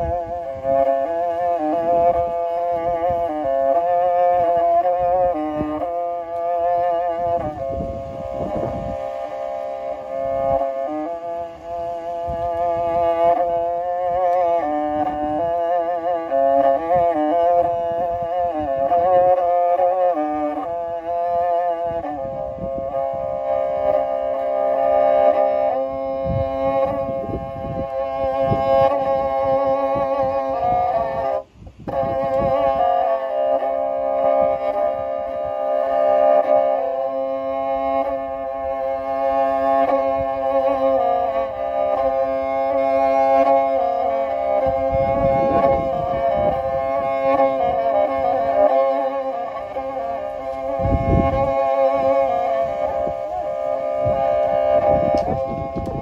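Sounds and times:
bowed two-stringed fiddle melody: 0.0s - 56.0s.

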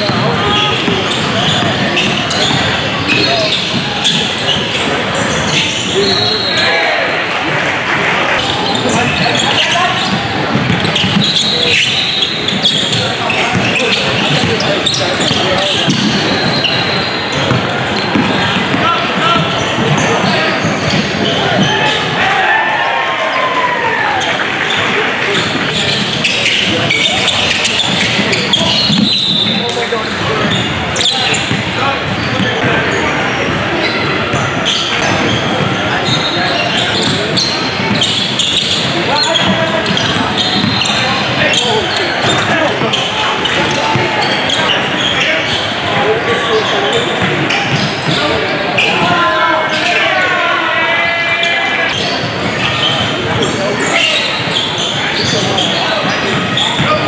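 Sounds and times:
shoe squeaks: 0.0s - 7.0s, 8.3s - 22.1s, 24.2s - 57.0s
players and spectators talking: 0.0s - 57.0s.

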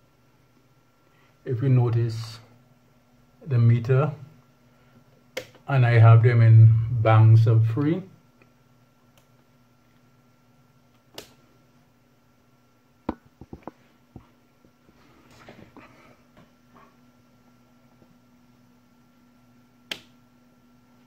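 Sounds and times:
faint steady hum: 0.0s - 21.0s
rocker switch clicks: 10.9s - 11.4s, 19.9s - 20.2s.

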